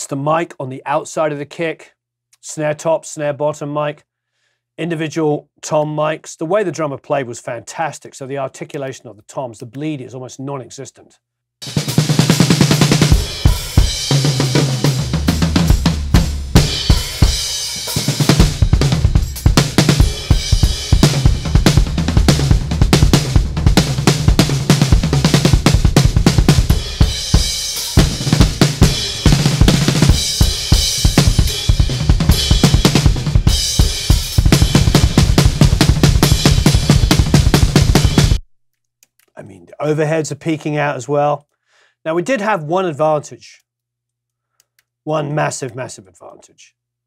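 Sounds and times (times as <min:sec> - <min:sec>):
drum kit groove: 0:11.6 - 0:38.4.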